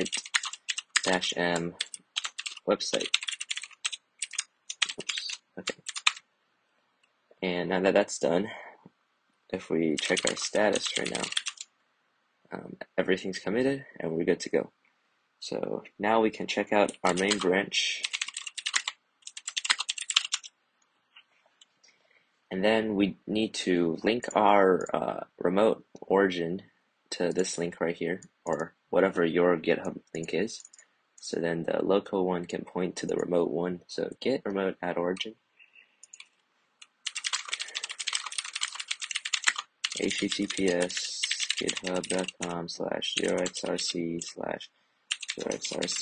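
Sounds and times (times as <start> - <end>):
keyboard typing: 0.0 - 6.2, 10.0 - 11.6, 16.8 - 20.5, 36.0 - 42.5, 43.2 - 44.4, 45.1 - 46.0.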